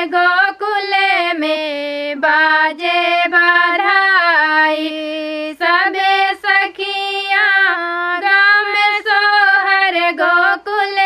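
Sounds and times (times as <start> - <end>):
women singing in unison: 0.0 - 11.0.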